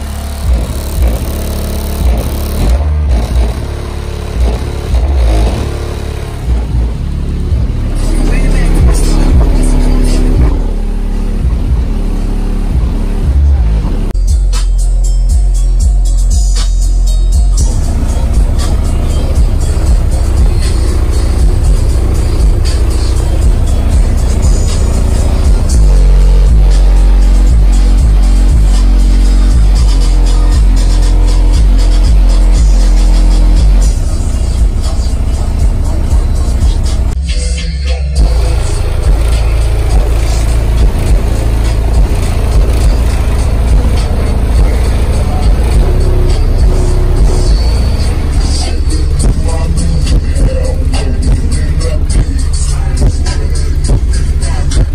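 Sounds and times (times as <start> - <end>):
bass-heavy music through subwoofers: 0.0 - 54.9.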